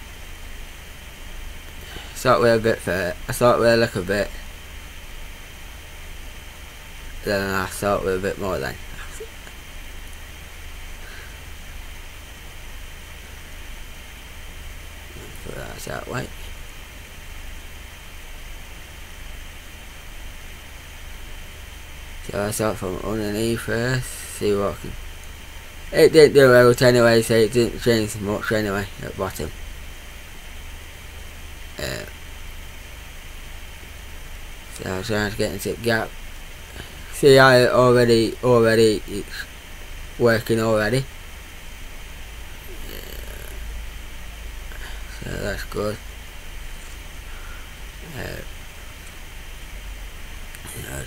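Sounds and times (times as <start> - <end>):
low hum: 0.0 - 51.0
steady hiss: 0.0 - 51.0.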